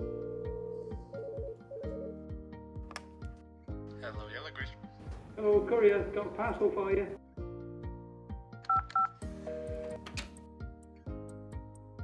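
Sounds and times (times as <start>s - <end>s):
background music with beat: 0.0s - 3.9s
telephone keypad tones: 8.7s - 10.0s.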